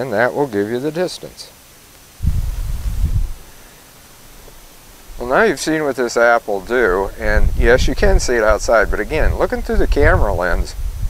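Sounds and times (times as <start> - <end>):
faint low hiss: 0.0 - 11.0
wind buffeting on microphone: 2.2 - 3.6, 6.6 - 11.0.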